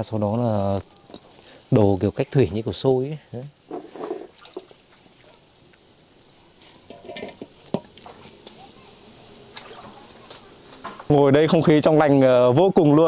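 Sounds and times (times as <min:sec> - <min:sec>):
cooking pots clinking and knocking: 0:06.9 - 0:08.0.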